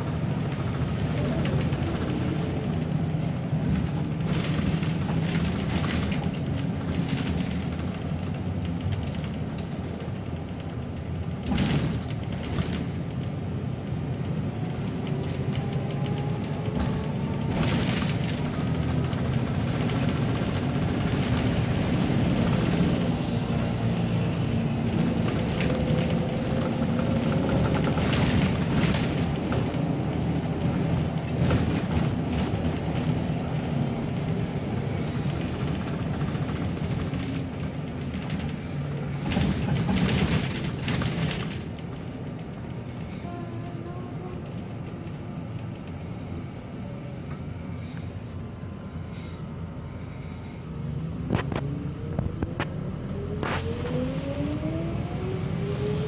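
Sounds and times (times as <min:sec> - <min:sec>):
bus engine under load: 0:00.0 - 0:56.0
tyre and road noise: 0:00.0 - 0:56.0
bodywork knocks and rattles: 0:35.0 - 0:42.7.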